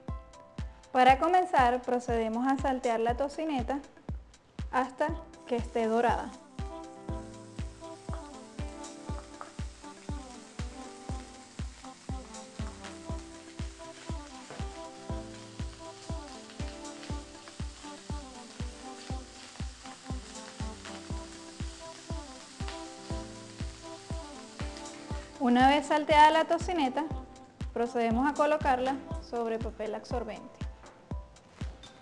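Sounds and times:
background music with steady beat: 0:00.0 - 0:32.0
bacon sizzling in a wok: 0:05.4 - 0:26.7.

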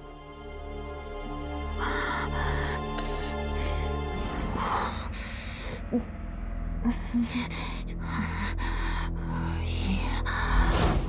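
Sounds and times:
low music bed: 0:00.0 - 0:11.0.

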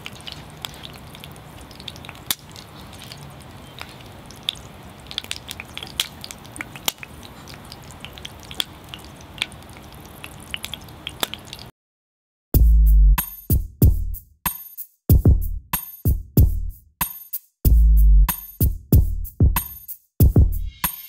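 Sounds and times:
hot oil sizzling and crackling: 0:00.0 - 0:11.7.

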